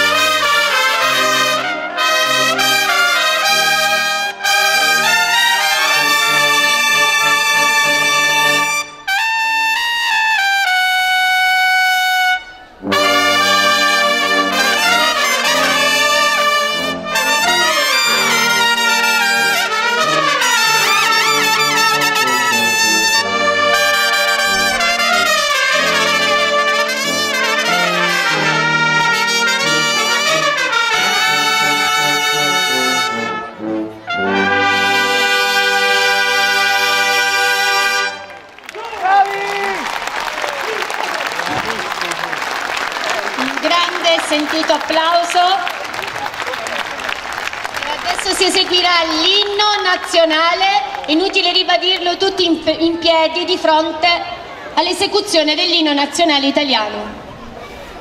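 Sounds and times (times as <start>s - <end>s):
brass fanfare band playing: 0.0s - 55.0s.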